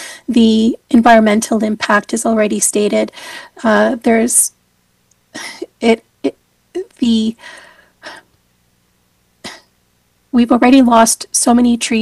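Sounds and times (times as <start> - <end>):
breathy sound: 7.4 - 8.3
person coughing: 9.4 - 9.7.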